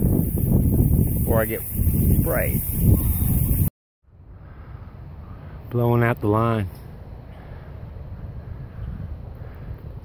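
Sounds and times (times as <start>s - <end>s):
high hiss: 0.0s - 3.7s
wind buffeting microphone: 0.0s - 3.7s, 7.5s - 10.0s
quiet outdoor rush: 0.0s - 10.0s.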